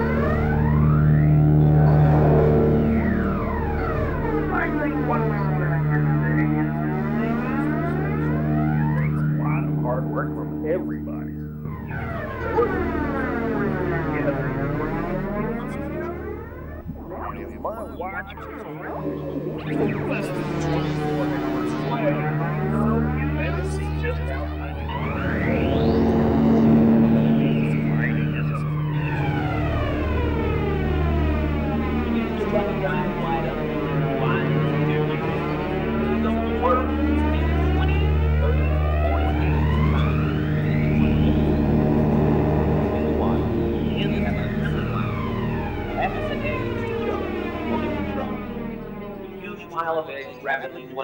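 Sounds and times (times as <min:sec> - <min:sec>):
garbled voices: 0:00.0 - 0:51.0
low steady drone: 0:00.0 - 0:51.0
low steady hum: 0:00.0 - 0:51.0
siren winding down: 0:00.0 - 0:51.0.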